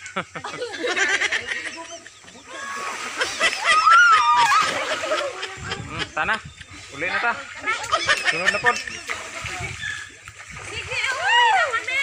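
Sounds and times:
water splashing in a pool: 0:00.0 - 0:12.0
voices: 0:00.4 - 0:12.0.

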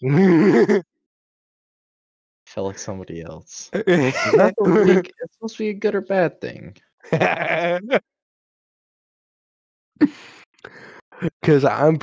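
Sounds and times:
man laughing: 0:00.0 - 0:00.8, 0:03.7 - 0:05.2, 0:07.1 - 0:08.0.

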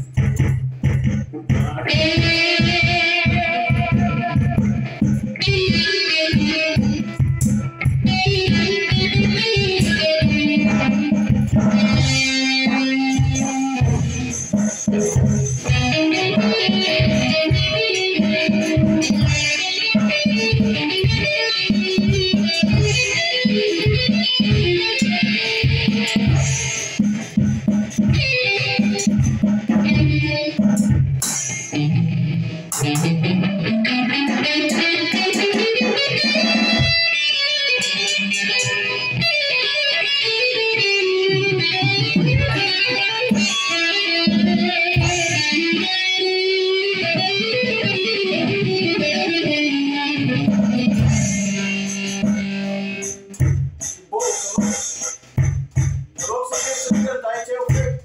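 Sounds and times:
electric guitar riffs: 0:00.0 - 0:58.0
electronic drum kit beat: 0:00.0 - 0:58.0.

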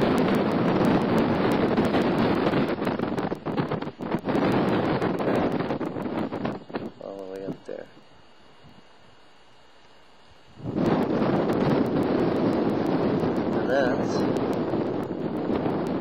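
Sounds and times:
wind rushing over microphone: 0:00.0 - 0:08.9, 0:10.4 - 0:16.0.

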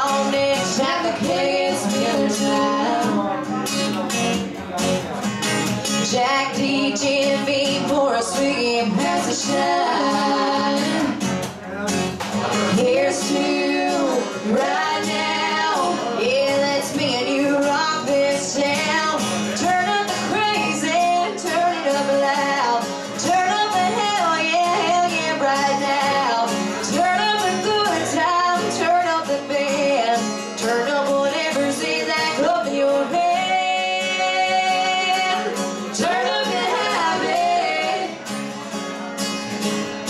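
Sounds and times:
women singing: 0:00.0 - 0:03.4, 0:06.0 - 0:11.3, 0:12.7 - 0:38.3
strummed acoustic guitar: 0:00.0 - 0:40.0.

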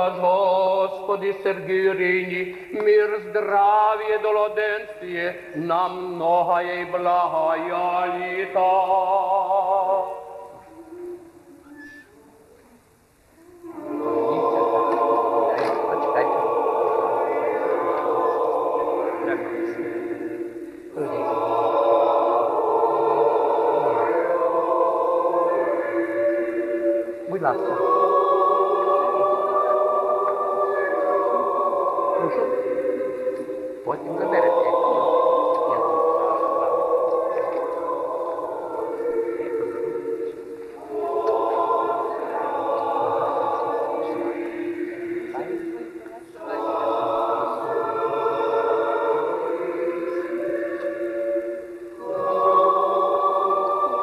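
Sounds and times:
voices singing slow chant: 0:00.0 - 0:54.0
faint low voices: 0:31.9 - 0:47.7.

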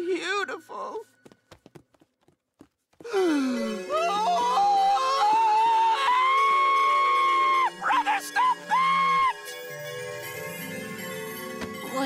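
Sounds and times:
background music: 0:03.1 - 0:12.0.

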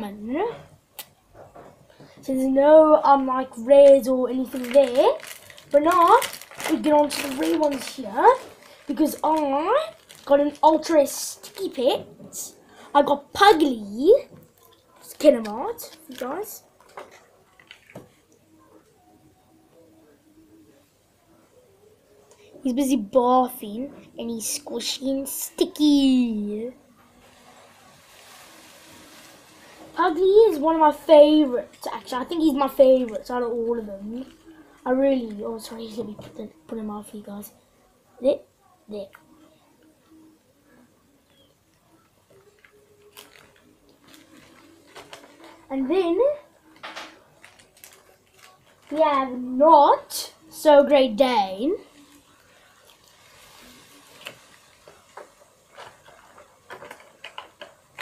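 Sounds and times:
plastic toy clicks and ticks: 0:55.1 - 0:58.0.

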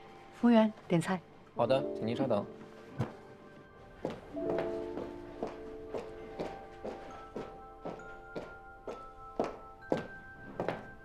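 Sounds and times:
background music: 0:00.0 - 0:11.0
footsteps on hard floor: 0:02.6 - 0:11.0.

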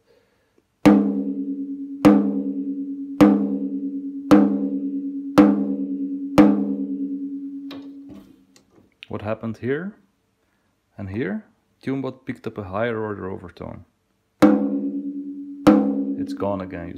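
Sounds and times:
drumstick striking tom drum: 0:00.9 - 0:08.1, 0:14.4 - 0:16.9.

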